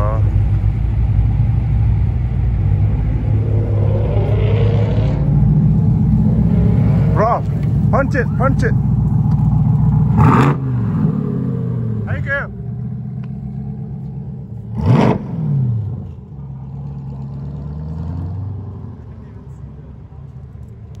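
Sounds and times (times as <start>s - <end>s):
car engine revving: 0.0s - 19.8s.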